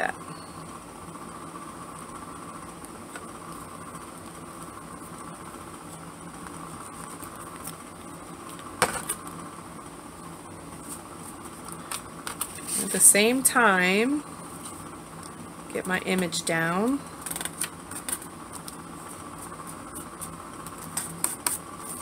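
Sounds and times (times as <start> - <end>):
mechanical background hum: 0.0 - 22.0.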